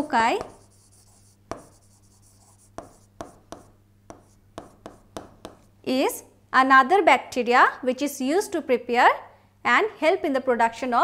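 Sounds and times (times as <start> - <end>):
faint steady hum: 0.0 - 11.0
pen writing on glass: 0.4 - 5.7.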